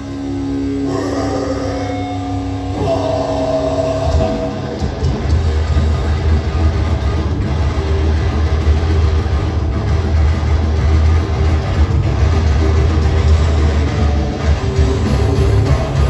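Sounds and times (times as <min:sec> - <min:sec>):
metal band playing live: 0:00.0 - 0:16.0.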